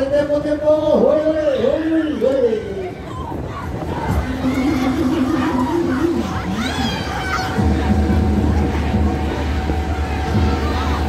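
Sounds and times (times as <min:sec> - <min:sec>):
riders shouting: 0:00.9 - 0:07.6
long drawn-out shout: 0:01.6 - 0:07.8
low rumble: 0:03.1 - 0:11.0.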